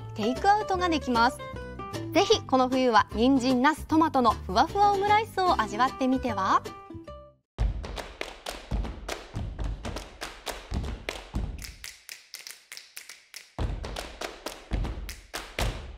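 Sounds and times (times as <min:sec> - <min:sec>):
percussive jingle music: 0:07.6 - 0:11.9.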